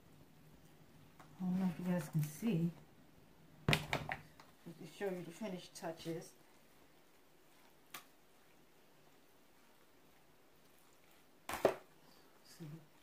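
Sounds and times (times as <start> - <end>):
person speaking: 1.3 - 2.8, 4.6 - 6.4.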